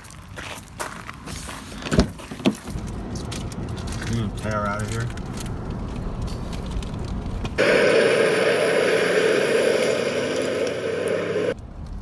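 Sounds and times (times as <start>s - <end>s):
car tyres rolling over gravel: 0.0s - 8.2s.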